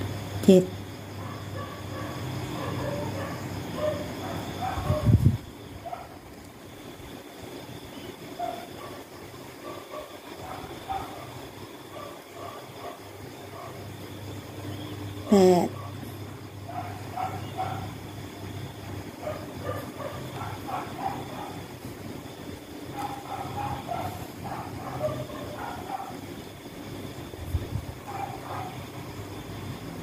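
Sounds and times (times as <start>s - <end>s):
low background hum: 0.0s - 30.0s.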